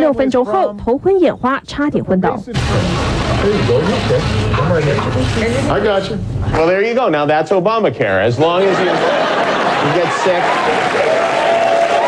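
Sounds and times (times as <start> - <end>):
studio audience applauding: 8.8 - 12.0.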